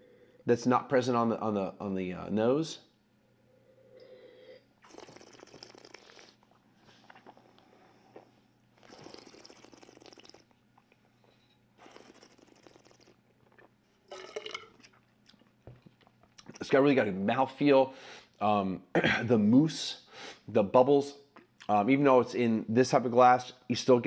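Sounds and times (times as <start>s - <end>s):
person slurping and swishing wine: 4.8s - 8.2s, 8.8s - 10.5s, 11.8s - 15.0s.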